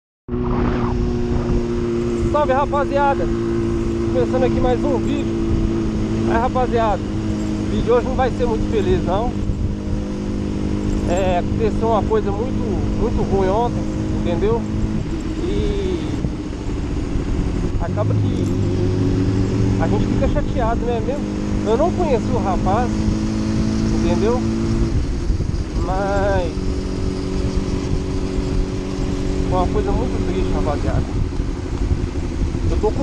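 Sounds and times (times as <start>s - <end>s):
motorcycle engine cruising: 0.3s - 33.0s
wind rumble on microphone: 0.3s - 33.0s.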